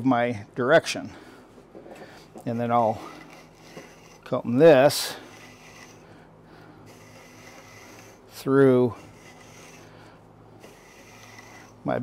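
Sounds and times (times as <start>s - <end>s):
comb scraping through fibres: 2.5s - 6.1s, 6.9s - 12.0s.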